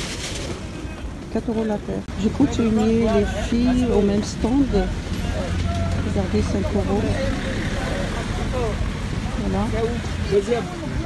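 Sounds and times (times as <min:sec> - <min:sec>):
traffic rumble: 0:00.0 - 0:11.0
people talking: 0:00.7 - 0:11.0.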